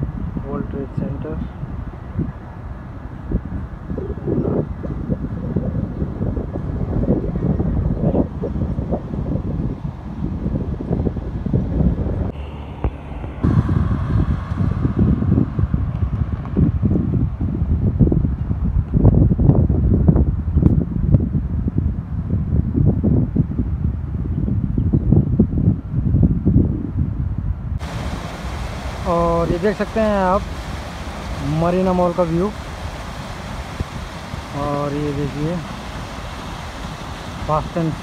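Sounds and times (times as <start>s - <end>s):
wind buffeting microphone: 0.0s - 38.0s
water fountains splashing: 27.8s - 38.0s.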